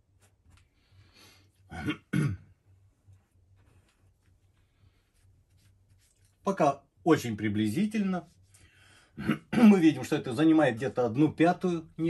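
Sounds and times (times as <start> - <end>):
faint soft rustles: 0.0 - 1.7, 2.6 - 6.6, 8.0 - 9.0
man clearing throat: 1.7 - 2.5, 9.2 - 9.9.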